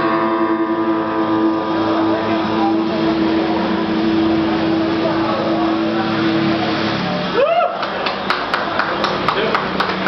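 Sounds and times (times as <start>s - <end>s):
acoustic guitar strumming: 0.0s - 7.4s
low drone note: 0.0s - 8.3s
murmur of voices: 0.0s - 10.0s.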